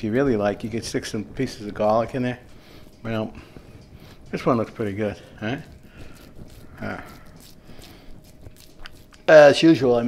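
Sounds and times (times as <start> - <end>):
soft crackling and rustling: 0.0 - 10.0.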